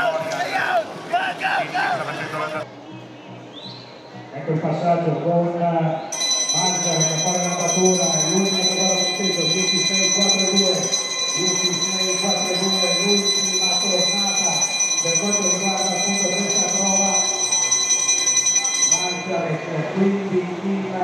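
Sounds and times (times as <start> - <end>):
lap bell ringing: 6.2 - 19.6.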